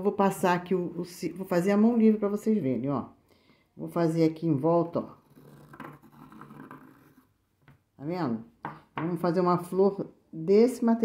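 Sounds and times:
pencil scratching on cloth: 0:05.0 - 0:07.4.

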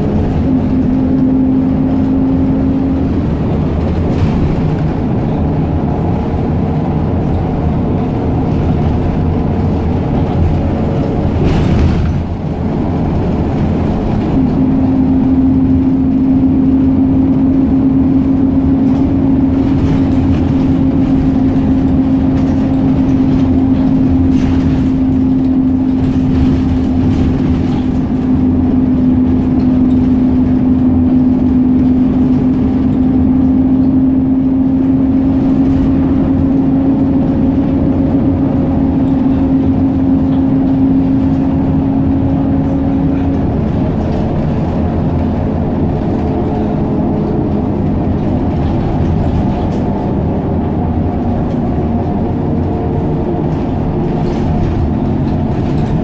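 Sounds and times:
bus engine and road rumble: 0:00.0 - 0:56.0.

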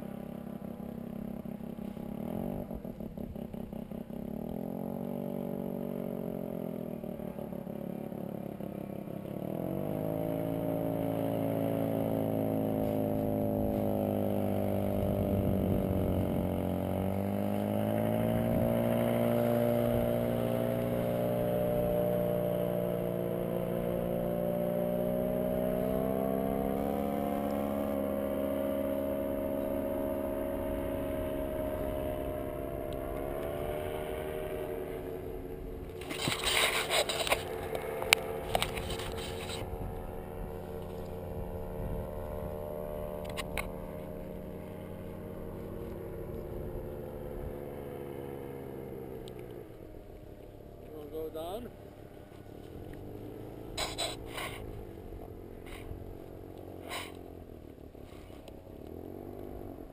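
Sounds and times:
paramotor engine droning: 0:00.0 - 0:59.9.

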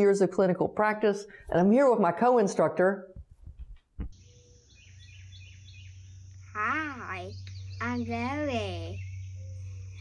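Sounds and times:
birds chirping: 0:04.1 - 0:10.0.

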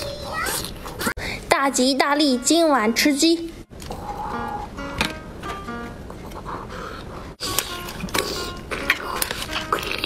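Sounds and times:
background music: 0:01.6 - 0:03.5, 0:04.1 - 0:06.8, 0:07.4 - 0:10.0.

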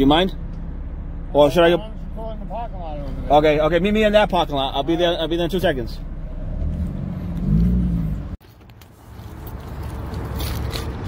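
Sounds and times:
road noise: 0:00.0 - 0:11.0
car engine accelerating: 0:00.2 - 0:08.4.

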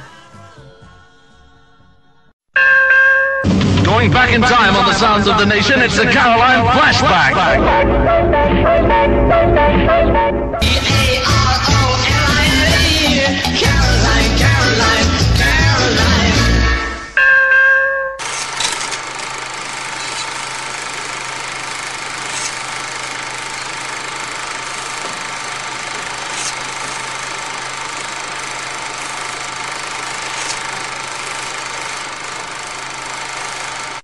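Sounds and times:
film projector whirring: 0:18.2 - 0:34.0.

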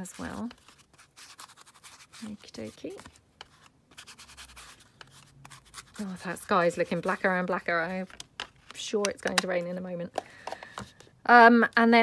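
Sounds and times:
ink pad rubbing on card: 0:00.0 - 0:03.0.

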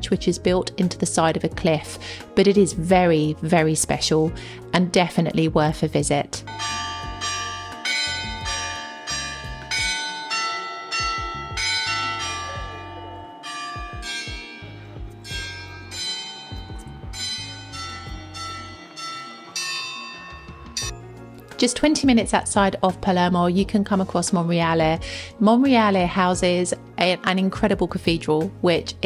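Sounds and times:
church bells ringing: 0:06.5 - 0:21.0.

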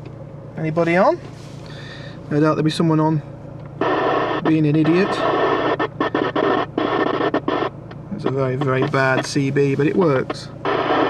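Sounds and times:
cb radio static hissing: 0:03.8 - 0:11.0.

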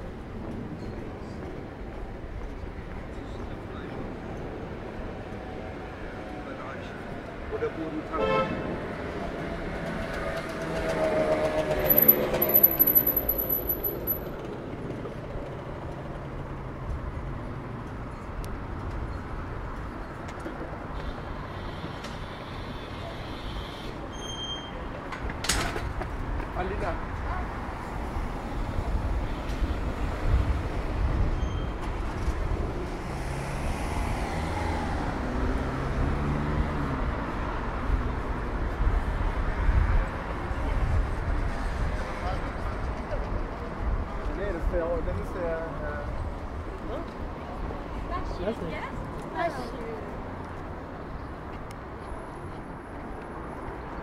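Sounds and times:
traffic rumble: 0:00.0 - 0:54.0
vehicle passing loudly: 0:32.6 - 0:39.1.

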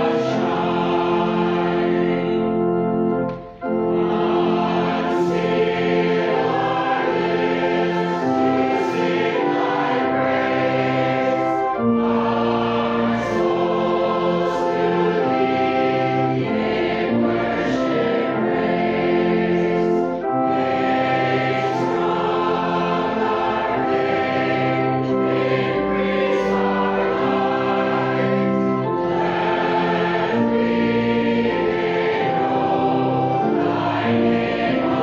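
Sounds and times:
congregation singing a hymn: 0:00.0 - 0:35.0.

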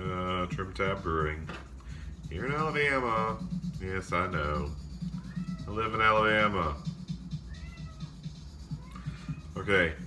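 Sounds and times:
cat meowing: 0:05.1 - 0:06.0, 0:07.3 - 0:09.6.

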